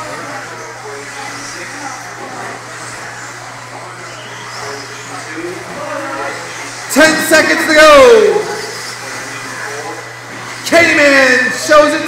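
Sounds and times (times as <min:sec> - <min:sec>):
electric motors whining: 0:00.0 - 0:12.0.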